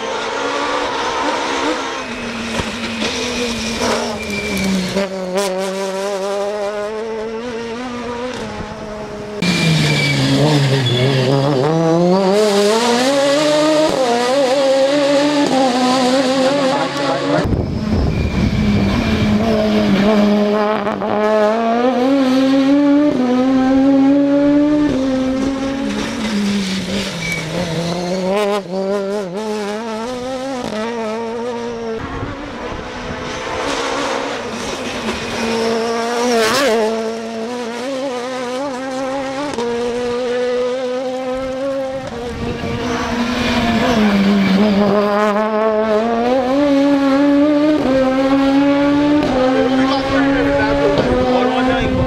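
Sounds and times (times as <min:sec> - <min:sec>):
rally car engine revving: 0:00.0 - 0:52.0.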